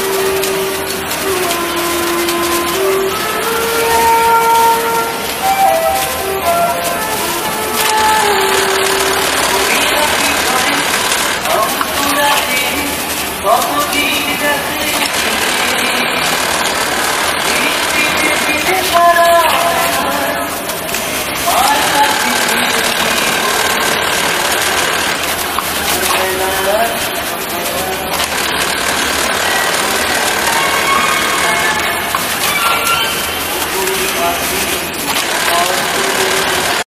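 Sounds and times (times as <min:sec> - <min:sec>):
indistinct voices: 0:00.0 - 0:36.9
sewing machines running: 0:00.0 - 0:36.9.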